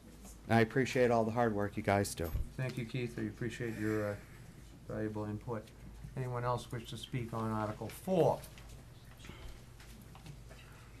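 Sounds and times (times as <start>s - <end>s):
steady low hum: 0.0s - 11.0s
faint clicks and rustles: 4.4s - 11.0s.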